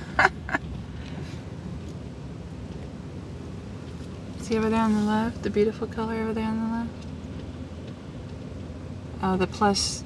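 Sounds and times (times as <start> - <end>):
woman laughing: 0.0 - 0.7
car rumbling on dirt track: 0.0 - 9.8.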